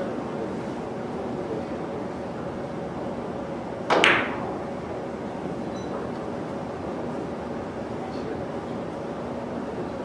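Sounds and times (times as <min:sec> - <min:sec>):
cue tip striking cue ball: 0:03.9 - 0:04.7.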